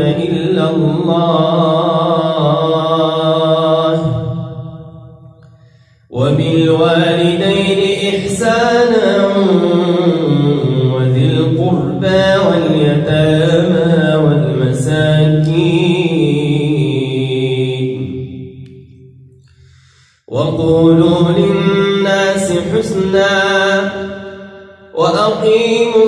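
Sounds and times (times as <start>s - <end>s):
man reciting melodically: 0.0s - 4.8s, 5.8s - 18.5s, 20.2s - 26.0s.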